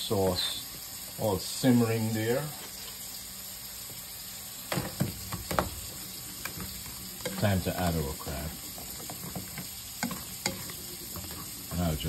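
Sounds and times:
sauce sizzling in a pan: 0:00.0 - 0:12.0.

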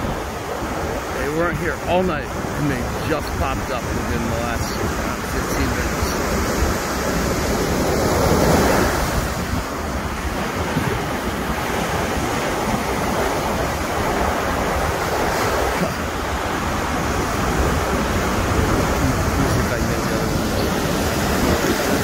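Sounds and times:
ocean surf rushing: 0:00.0 - 0:22.0
wind rumbling on microphone: 0:00.0 - 0:22.0.

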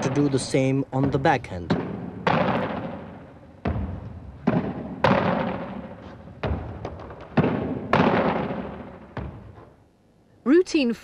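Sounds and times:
squash ball smacks: 0:01.1 - 0:09.8.

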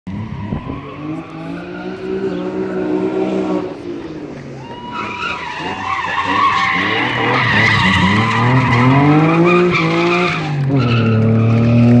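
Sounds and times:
car engine revving hard: 0:00.9 - 0:04.1, 0:05.4 - 0:12.0
tyres squealing: 0:04.6 - 0:11.5.

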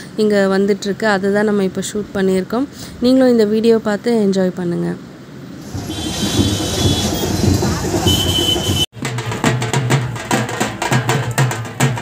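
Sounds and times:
crowd and street noise: 0:05.0 - 0:12.0
hand drums beating: 0:05.6 - 0:12.0.

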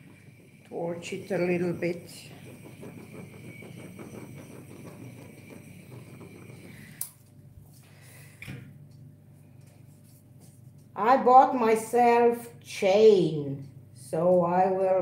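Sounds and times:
butane torch hissing: 0:00.0 - 0:07.3.

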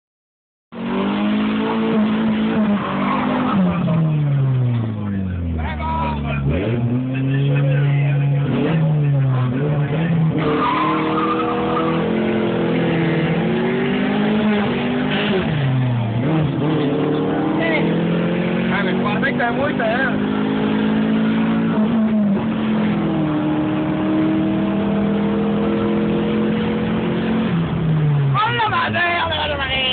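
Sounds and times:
car engine revving in cabin: 0:00.7 - 0:28.4.

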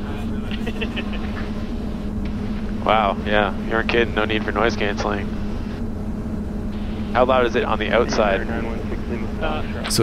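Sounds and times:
electric motor and propeller hum: 0:00.0 - 0:10.0.

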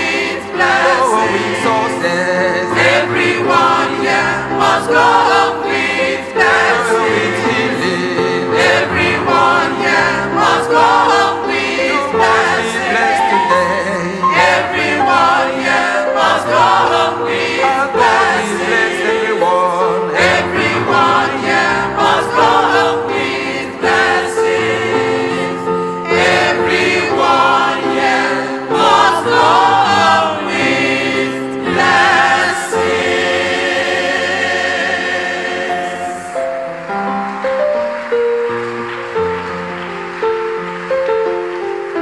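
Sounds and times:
mixed choir singing gospel: 0:00.0 - 0:37.0.

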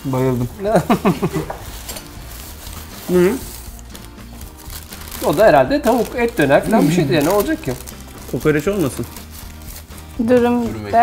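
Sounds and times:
plastic bags and paper rustling: 0:00.0 - 0:11.0
food containers clattering: 0:00.2 - 0:02.8
laughter: 0:00.7 - 0:01.6.

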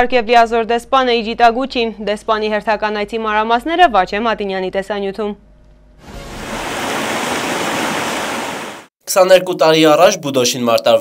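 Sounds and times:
stream water rushing over rocks: 0:06.1 - 0:08.9.

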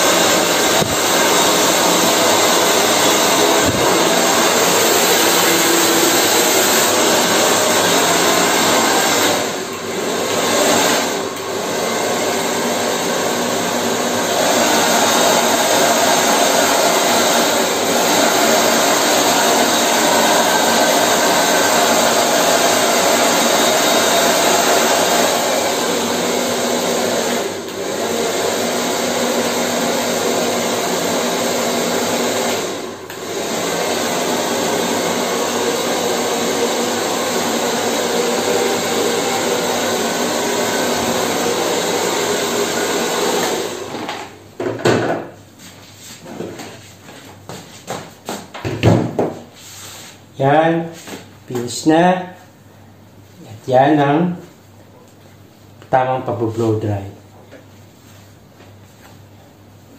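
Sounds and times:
hair dryer running: 0:00.0 - 0:44.4.

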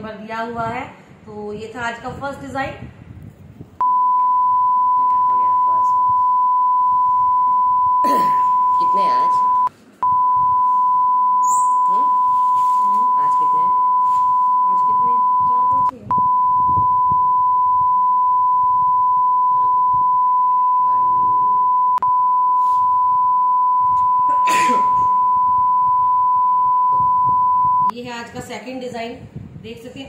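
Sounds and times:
high-pitched test-tone beep: 0:03.8 - 0:27.9.

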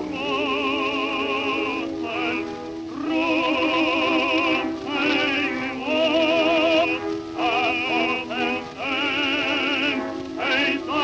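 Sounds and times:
two men singing a duet: 0:00.0 - 0:11.0.

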